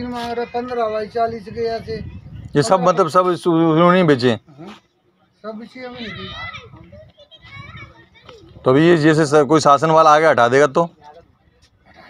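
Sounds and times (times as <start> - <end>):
high-pitched background talk: 0.0 - 8.7
close conversation: 0.0 - 12.0.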